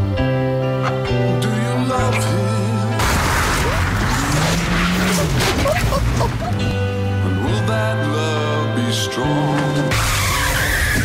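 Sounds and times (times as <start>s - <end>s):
car engine revving: 2.8s - 7.1s
tyres squealing and skidding: 3.1s - 6.7s, 9.9s - 11.0s.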